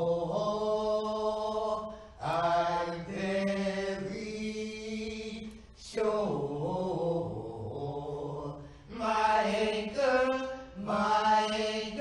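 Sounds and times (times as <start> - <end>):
person singing church music: 0.0 - 12.0.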